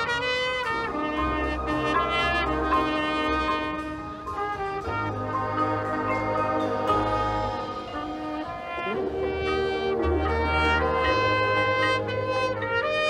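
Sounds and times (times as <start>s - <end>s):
loud trumpet: 0.0s - 13.0s
marching band playing: 0.0s - 13.0s.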